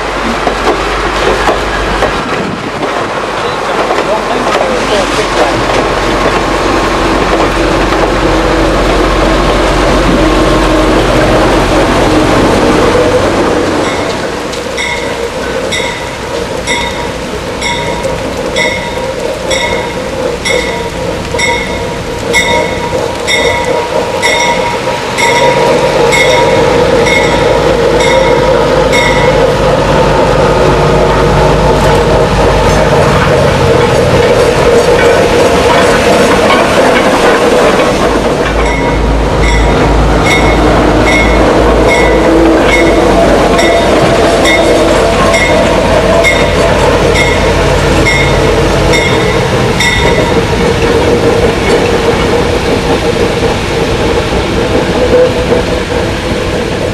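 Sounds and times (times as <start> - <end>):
diesel locomotive engine: 0.0 - 56.9
crossing bell ringing: 13.8 - 29.7, 38.4 - 50.4.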